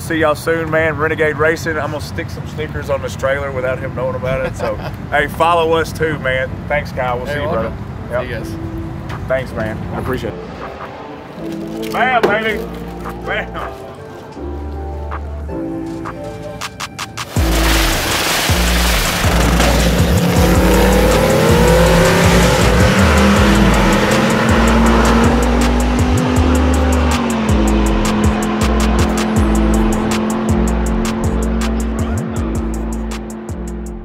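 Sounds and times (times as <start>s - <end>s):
music with heavy bass beat: 15.1s - 34.0s
drag racing car engine: 18.8s - 33.4s.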